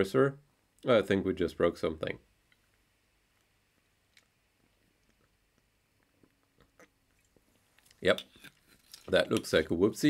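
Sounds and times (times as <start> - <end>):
person swallowing: 6.1 - 7.4.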